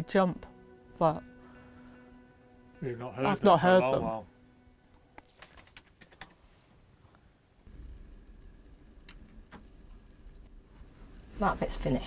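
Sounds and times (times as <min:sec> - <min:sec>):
low rumble: 0:07.6 - 0:11.4.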